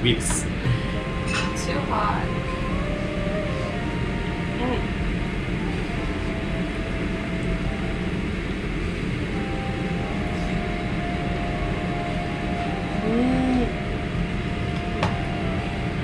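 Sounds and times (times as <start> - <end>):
restaurant background rumble: 0.0 - 16.0.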